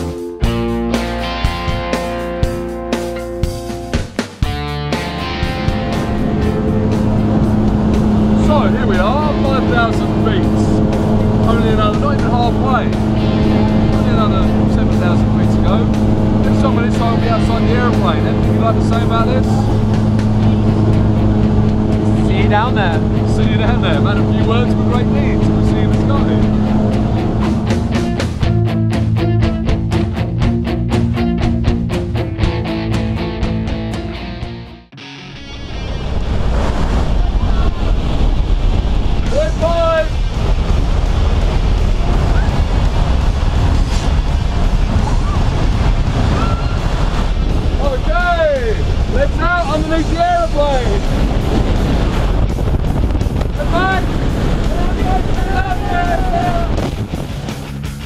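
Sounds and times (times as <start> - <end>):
light aircraft engine droning: 4.5 - 28.7, 35.6 - 57.6
rush of wind: 5.0 - 28.5, 35.4 - 58.0
people shouting: 54.8 - 56.8.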